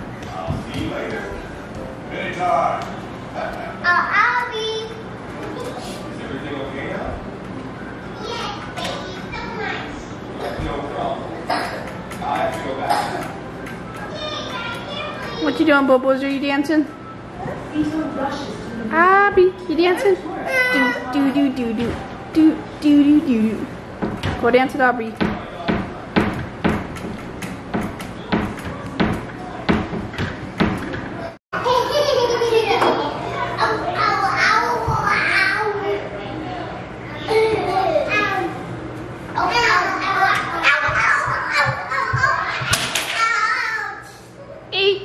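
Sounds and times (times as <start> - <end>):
young children chattering: 19.6 - 21.7, 31.2 - 38.8.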